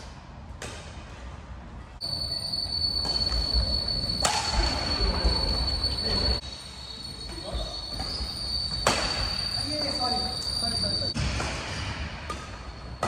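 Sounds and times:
shoe squeaks: 0:02.0 - 0:11.2
high-pitched whine: 0:02.0 - 0:13.0.

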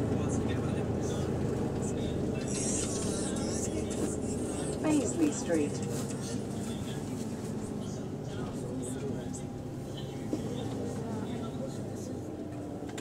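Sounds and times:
bus engine and road noise: 0:00.0 - 0:13.0.

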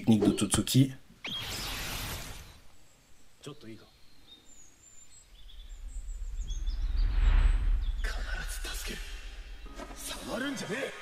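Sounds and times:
faint bird chirps: 0:01.2 - 0:10.2
deep rumbling whoosh: 0:05.3 - 0:09.7
animation soundtrack: 0:05.4 - 0:11.0.

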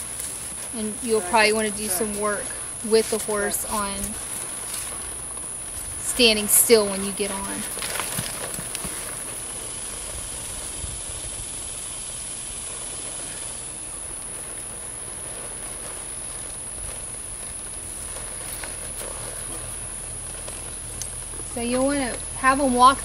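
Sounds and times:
hooves and tack knocking: 0:00.0 - 0:11.4, 0:12.5 - 0:23.0
high-pitched whine: 0:00.0 - 0:23.0
steady hiss: 0:00.0 - 0:23.0.

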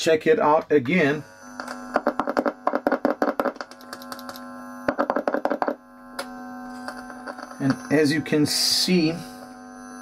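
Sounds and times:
amplifier hum: 0:00.0 - 0:10.0.

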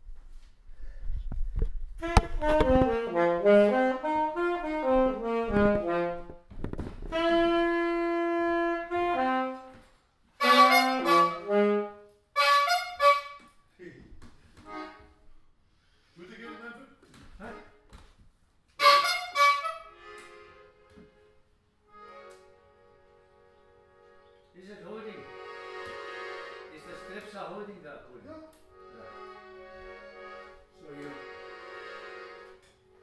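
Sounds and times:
solo wind instrument melody: 0:02.0 - 0:06.4, 0:07.1 - 0:13.6, 0:18.8 - 0:21.0.

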